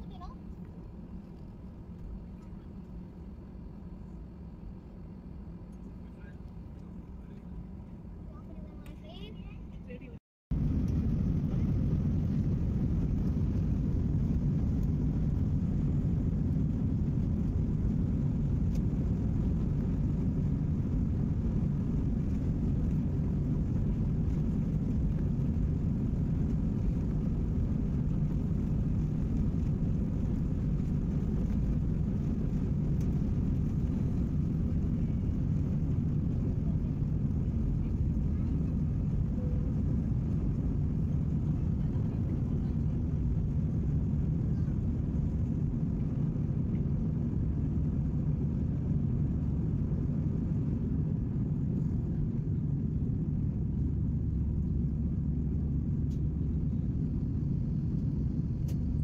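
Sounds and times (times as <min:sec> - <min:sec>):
jet engines rumbling: 0:00.0 - 0:59.0.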